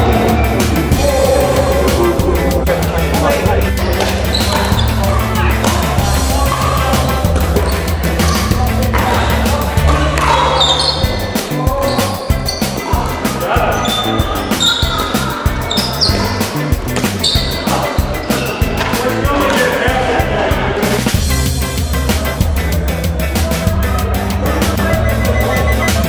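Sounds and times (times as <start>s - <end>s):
background music with bass beat: 0.0s - 26.0s.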